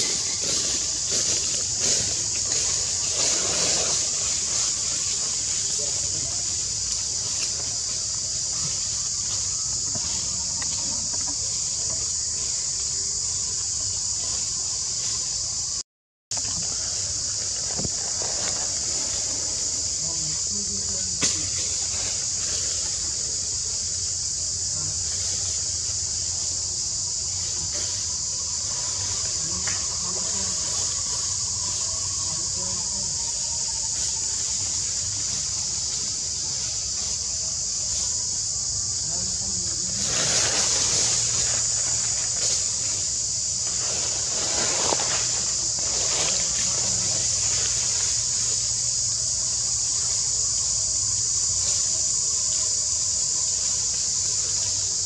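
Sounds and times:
forest insects droning: 0.0s - 55.0s.

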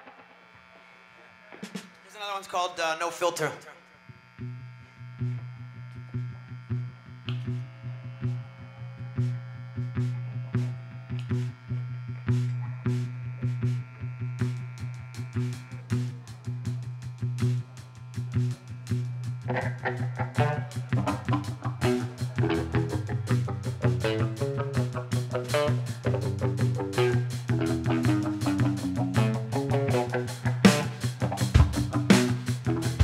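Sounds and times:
low buzzing drone: 3.9s - 33.0s
ticking beat: 15.3s - 33.0s
live rock band playing: 18.5s - 33.0s.

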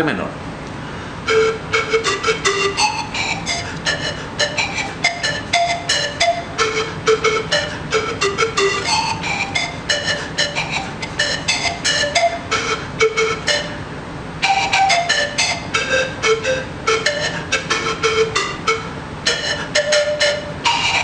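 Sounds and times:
panpipe melody: 1.2s - 21.0s.

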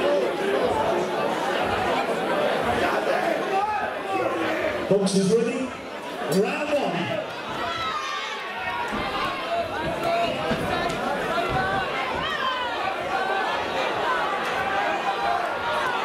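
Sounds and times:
spectators shouting and chattering: 0.0s - 16.0s.

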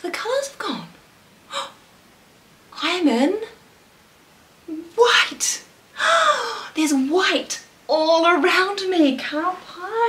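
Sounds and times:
woman speaking: 0.0s - 1.0s, 2.8s - 3.6s, 4.7s - 5.7s, 6.7s - 10.0s
woman gasping: 6.0s - 6.8s.

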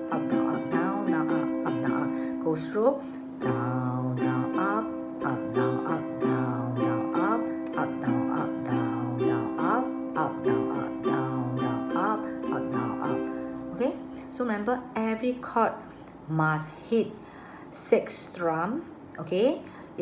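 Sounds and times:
ukulele strumming chords: 0.0s - 15.0s.

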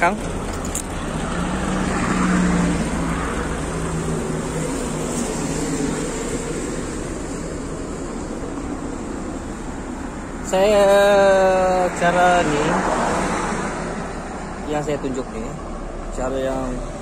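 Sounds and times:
road noise: 0.0s - 17.0s.

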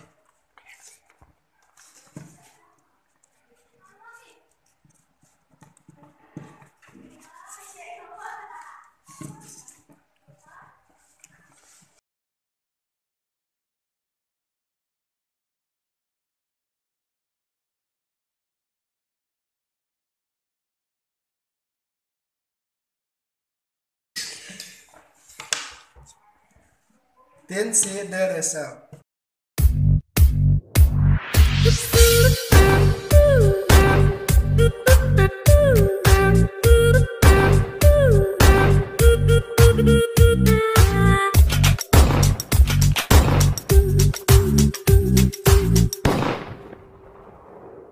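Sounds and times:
paper creasing soft knocks: 0.3s - 7.9s.

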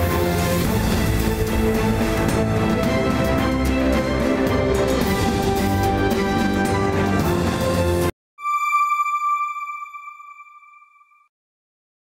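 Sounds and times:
background music: 0.0s - 10.4s
electronic bell chime: 8.4s - 11.3s.

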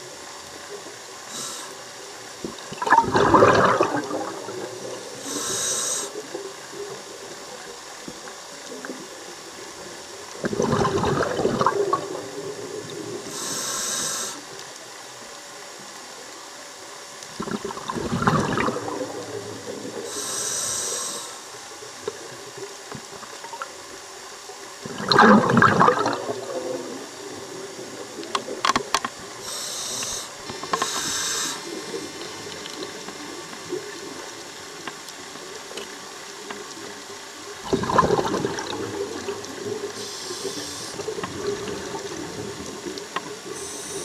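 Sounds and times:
regulator inhalation hiss: 1.2s - 2.2s, 5.0s - 6.4s, 13.2s - 14.6s, 20.0s - 21.6s, 29.2s - 32.4s, 39.8s - 41.2s, 43.4s - 44.0s
gurgling exhaled bubbles underwater: 2.2s - 13.6s, 17.3s - 20.4s, 21.8s - 44.0s.

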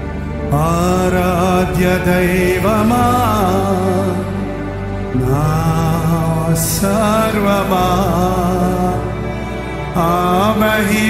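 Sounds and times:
band and keyboard accompaniment: 0.0s - 11.0s
man singing a long held note: 0.5s - 11.0s.

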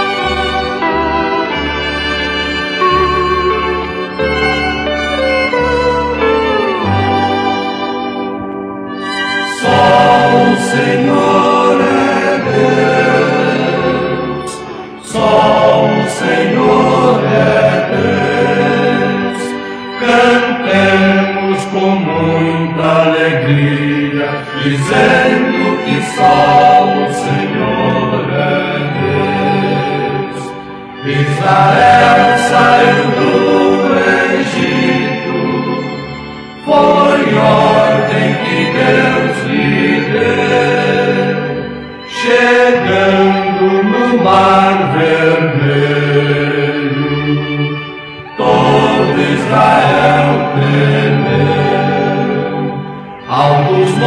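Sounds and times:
voices singing a hymn: 0.0s - 54.0s.

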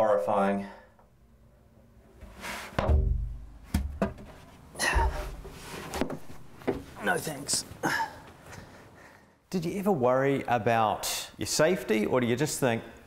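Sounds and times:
heavy thumps from wooden crate: 2.8s - 5.4s.

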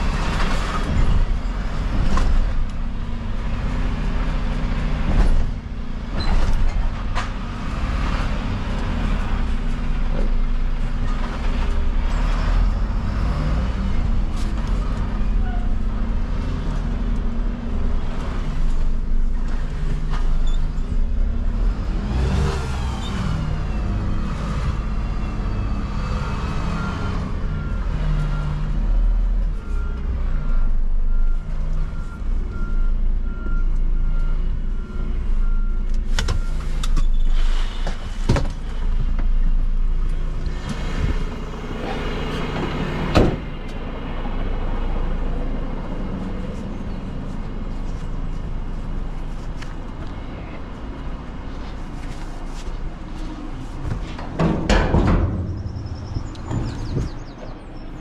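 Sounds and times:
truck diesel engine running: 52.9s - 58.0s.

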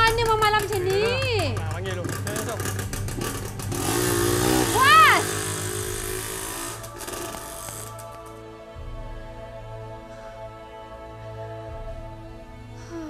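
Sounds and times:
small motorcycle engine revving: 0.6s - 8.2s.

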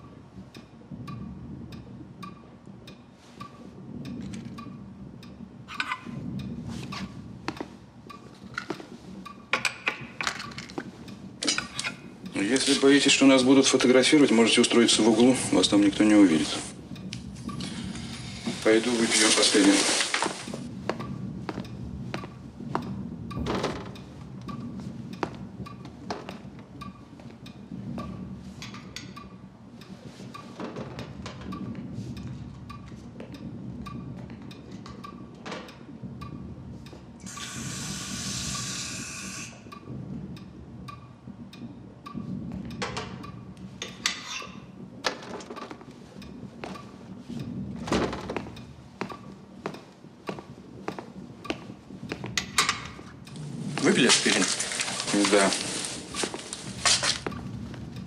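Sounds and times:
water tap running: 37.3s - 39.5s.

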